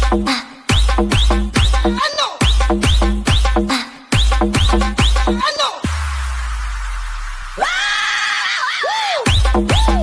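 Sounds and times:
high scream-like synth wail: 7.6 - 9.2.

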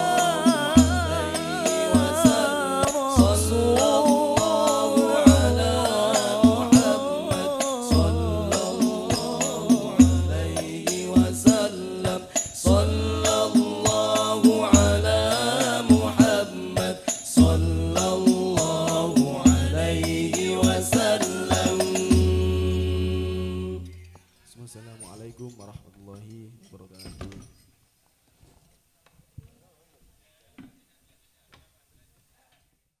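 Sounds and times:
male group singing in unison: 0.0 - 24.1
percussion hits: 0.0 - 24.2.

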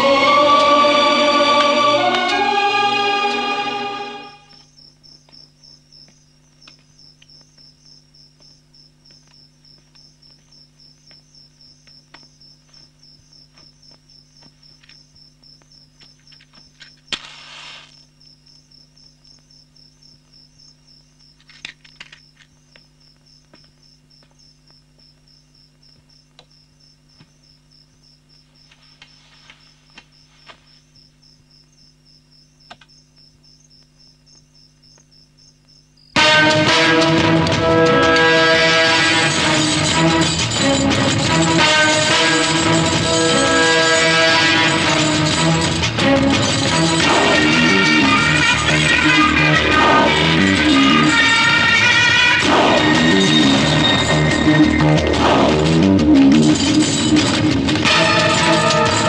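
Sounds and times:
crickets chirping: 0.0 - 55.6.

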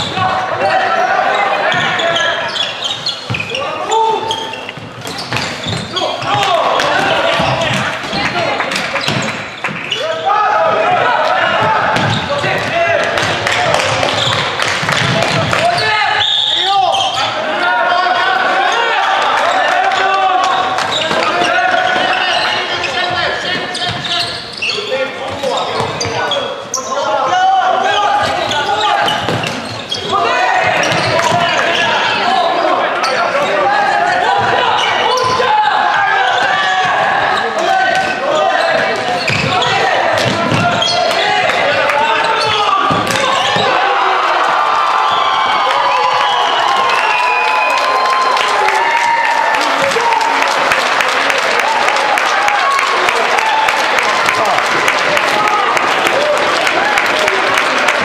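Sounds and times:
players shouting: 0.0 - 58.0.

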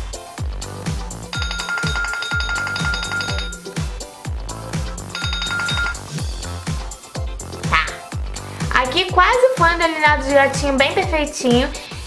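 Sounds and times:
phone timer alarm ringing: 1.3 - 3.8, 5.1 - 6.2
electronic dance music: 2.6 - 11.1.

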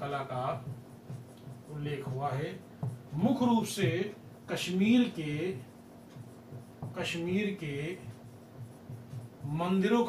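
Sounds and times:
man speaking: 0.0 - 0.8, 1.7 - 5.7, 6.9 - 8.2, 9.4 - 10.0
marker scratching on whiteboard: 0.0 - 10.0.

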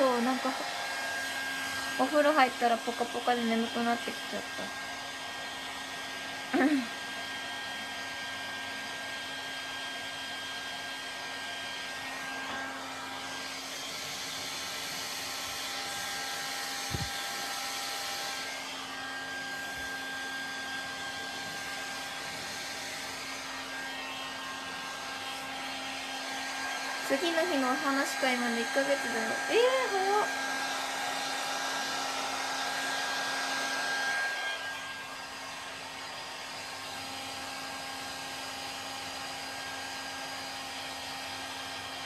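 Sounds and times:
hair dryer running: 0.0 - 42.0.

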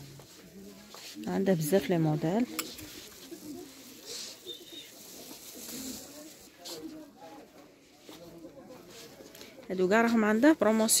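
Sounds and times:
woman's voice: 1.2 - 2.6, 9.7 - 11.0.

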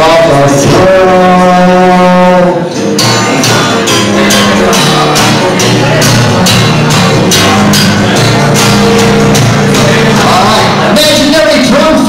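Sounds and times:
live rock band playing: 0.0 - 12.0
steady drum beat: 2.9 - 12.0.

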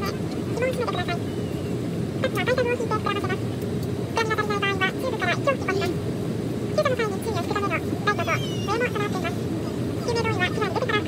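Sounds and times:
voice making announcement: 0.0 - 1.2, 2.2 - 3.5, 4.1 - 6.0, 6.7 - 11.0
airliner cabin hum: 0.0 - 11.0.

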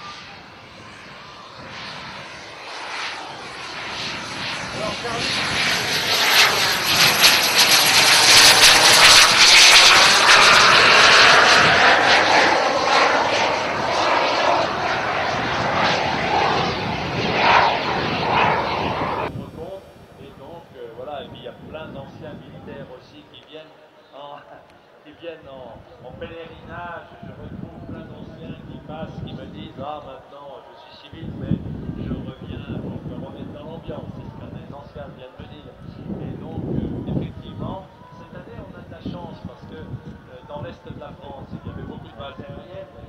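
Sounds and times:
high turbine whistle: 0.0 - 19.3
jet flying past: 0.0 - 20.4, 26.1 - 43.0.

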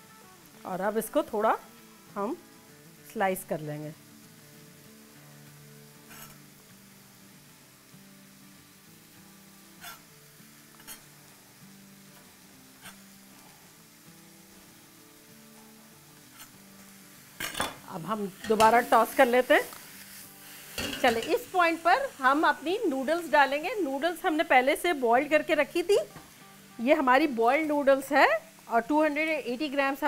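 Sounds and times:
soft background music: 0.0 - 30.0.

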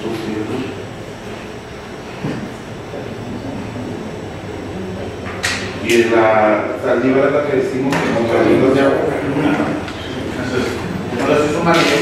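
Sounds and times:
murmur of voices: 0.0 - 12.0
room noise rumble: 0.0 - 12.0.

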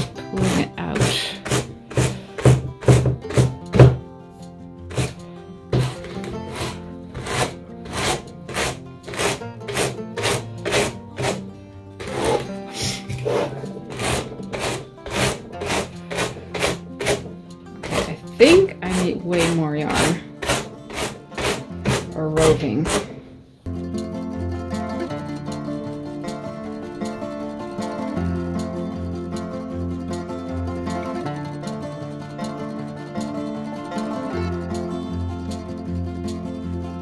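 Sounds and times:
brush scraping on wire carding cloth: 0.0 - 3.0, 4.9 - 11.4, 12.0 - 17.2, 17.8 - 23.2
background music: 0.0 - 37.0.

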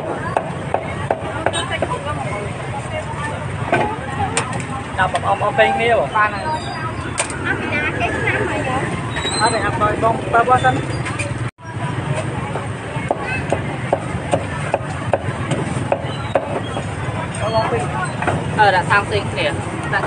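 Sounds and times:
people talking: 0.0 - 20.0
street traffic rumble: 0.0 - 20.0.

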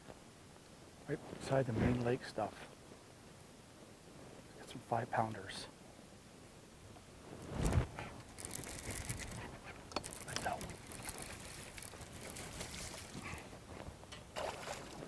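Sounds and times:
fish splashing at water surface: 14.3 - 15.0.

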